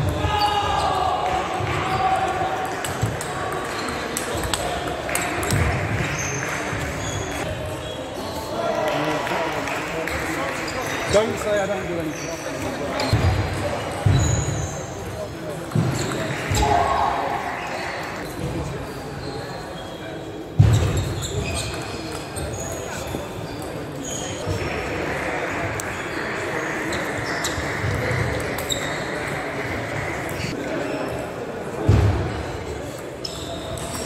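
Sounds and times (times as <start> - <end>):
background chatter: 0.0 - 34.0.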